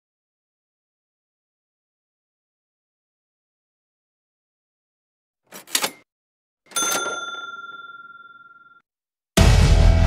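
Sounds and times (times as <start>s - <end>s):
notification bell ding: 6.7s - 8.8s.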